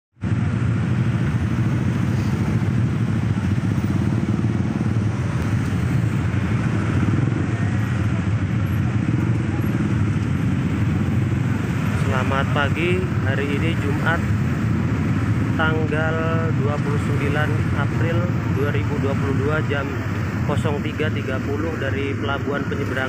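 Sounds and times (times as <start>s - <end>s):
cars in traffic: 0.2s - 23.0s
many motorcycle engines running: 0.2s - 23.0s.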